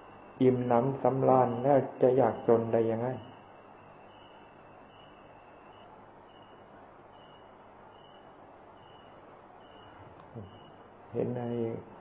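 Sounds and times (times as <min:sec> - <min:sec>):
recording hiss: 0:00.0 - 0:12.0
faint short high beep: 0:04.1 - 0:08.2.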